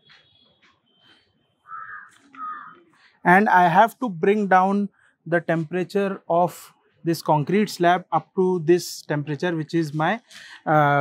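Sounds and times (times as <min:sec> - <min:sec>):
crow cawing: 0:01.7 - 0:02.9.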